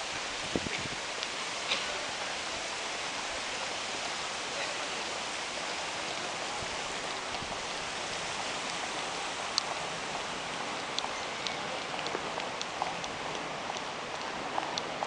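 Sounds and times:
steady rushing hiss: 0.0 - 15.0.

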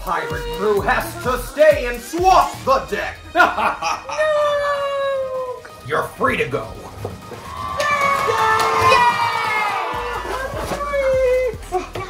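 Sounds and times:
children and adults cheering: 7.3 - 11.6.

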